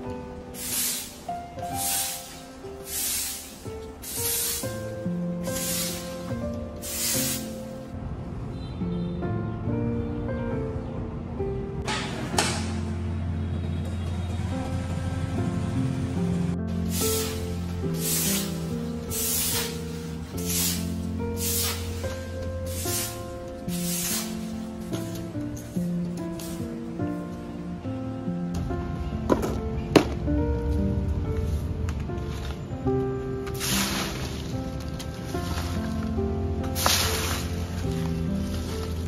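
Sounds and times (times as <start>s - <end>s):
background music: 0.0s - 39.0s
broom sweeping leaves on concrete: 0.5s - 7.9s, 16.8s - 26.8s, 33.4s - 39.0s.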